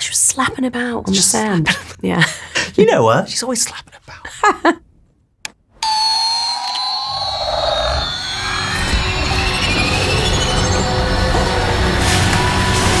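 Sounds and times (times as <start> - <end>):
toy electronic launch sound: 5.8 - 13.0
dramatic film music: 7.2 - 13.0.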